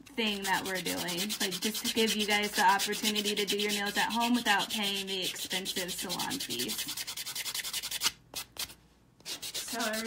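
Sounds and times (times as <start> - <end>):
nail buffer rasping on fingernail: 0.2 - 8.2.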